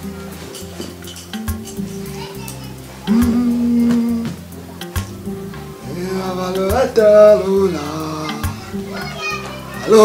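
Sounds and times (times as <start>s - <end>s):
background music with bass beat: 0.0s - 10.0s
man singing long wavering notes: 3.1s - 4.4s, 5.8s - 8.5s.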